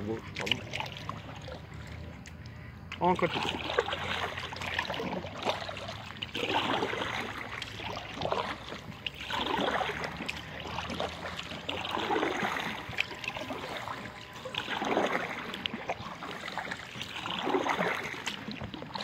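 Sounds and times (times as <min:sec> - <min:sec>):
paddle splashing in water: 0:00.0 - 0:19.0.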